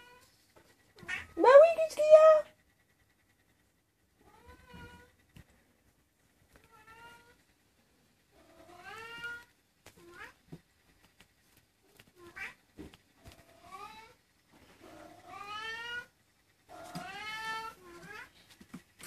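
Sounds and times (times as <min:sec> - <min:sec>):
cat meowing: 0:01.0 - 0:01.4, 0:04.2 - 0:05.2, 0:08.4 - 0:10.4, 0:14.9 - 0:16.1, 0:16.7 - 0:18.3.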